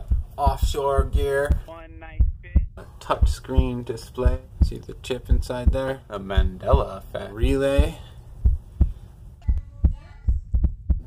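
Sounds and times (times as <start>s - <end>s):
low heartbeat-like thumping beat: 0.0s - 11.0s.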